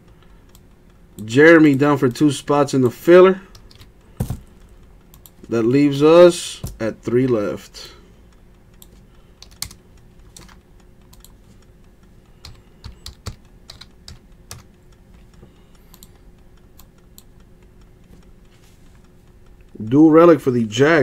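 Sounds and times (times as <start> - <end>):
low steady hum: 0.0 - 21.0
typing on computer keyboard: 8.8 - 11.4, 12.4 - 14.8.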